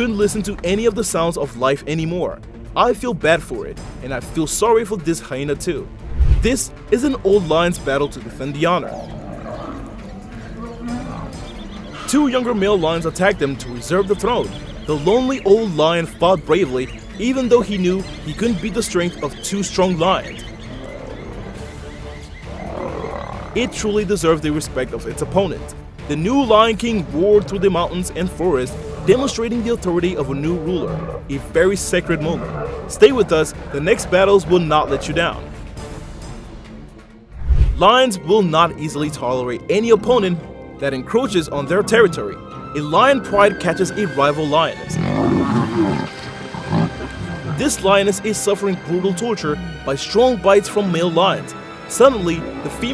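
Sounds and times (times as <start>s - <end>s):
background music: 0.0s - 52.9s
lions growling: 8.6s - 12.7s, 16.9s - 25.7s, 26.5s - 35.6s, 44.7s - 48.1s.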